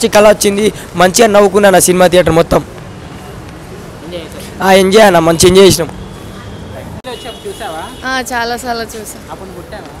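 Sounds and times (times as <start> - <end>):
man speaking into a microphone: 0.0 - 2.7, 4.3 - 6.0
street traffic: 0.0 - 10.0.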